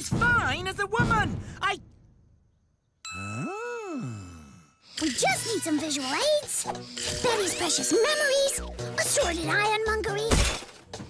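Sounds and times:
cartoon ding: 3.1s - 4.8s
pitched tone gliding up and down: 3.1s - 4.9s.

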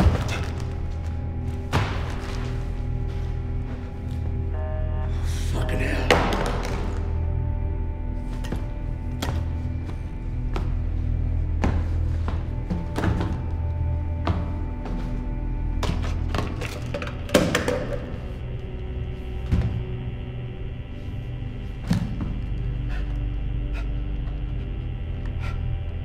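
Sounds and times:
low film score drone: 0.0s - 26.0s.

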